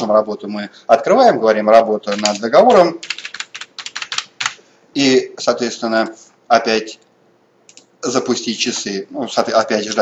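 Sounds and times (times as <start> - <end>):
computer keyboard typing: 2.1 - 4.6, 7.7 - 7.9.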